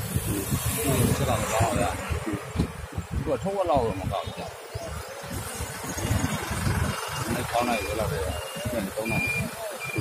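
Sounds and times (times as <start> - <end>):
road noise: 0.0 - 10.0
vehicle engine: 4.8 - 10.0.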